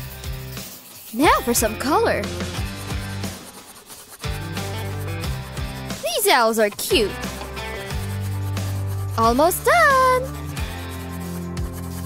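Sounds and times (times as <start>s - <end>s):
marker rubbing on bandage: 0.0s - 12.0s.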